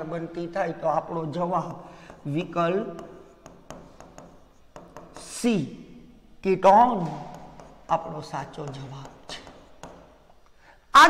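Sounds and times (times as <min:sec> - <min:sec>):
stylus tapping and scratching: 0:01.0 - 0:05.5, 0:06.8 - 0:10.5.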